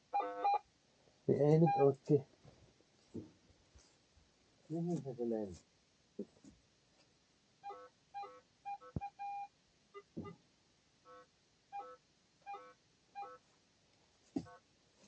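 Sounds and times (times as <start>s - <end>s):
metal detector beeping: 0.1s - 0.6s, 1.6s - 2.0s, 7.6s - 10.4s, 11.8s - 13.4s.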